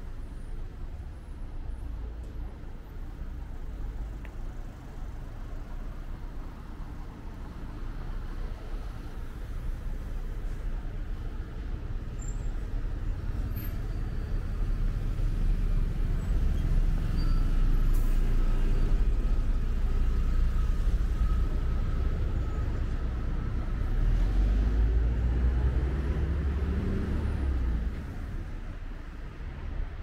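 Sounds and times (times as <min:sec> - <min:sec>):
vehicles passing on street: 0:00.0 - 0:30.0.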